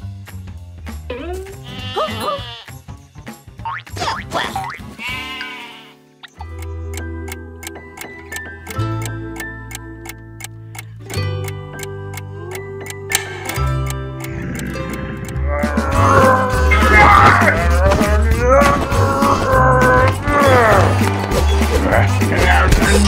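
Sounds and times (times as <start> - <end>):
cartoon music: 1.1 - 2.7, 3.6 - 6.9, 12.2 - 23.0
alarm clock ticking: 6.3 - 15.5.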